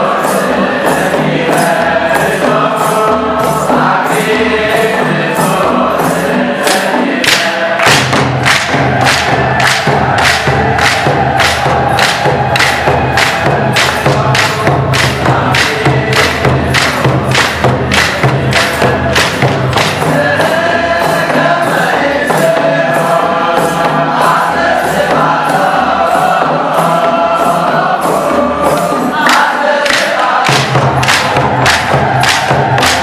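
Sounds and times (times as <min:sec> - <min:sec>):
even percussion beat: 0:00.0 - 0:33.0
group singing a hymn: 0:00.0 - 0:33.0.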